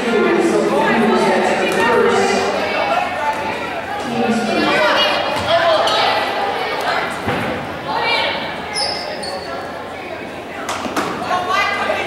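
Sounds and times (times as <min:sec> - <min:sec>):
echoing voices and chatter: 0:00.0 - 0:12.0.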